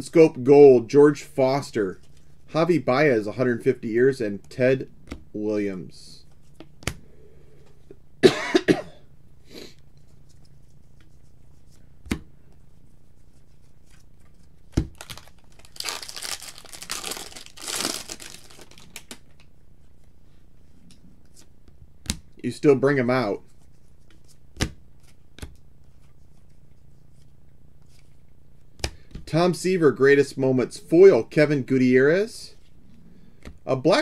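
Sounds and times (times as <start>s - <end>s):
person coughing: 8.2s - 9.1s
foil wrapper crinkling and tearing: 14.9s - 19.4s.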